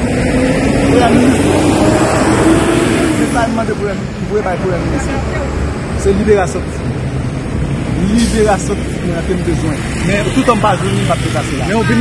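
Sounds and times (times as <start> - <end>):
voices talking: 0.6 - 12.0.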